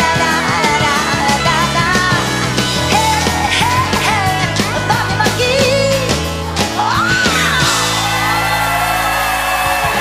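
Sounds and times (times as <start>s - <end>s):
country-rock band playing: 0.0s - 10.0s.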